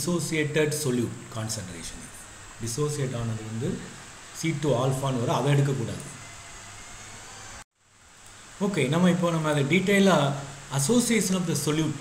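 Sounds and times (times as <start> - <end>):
recording background hiss: 0.0 - 12.0.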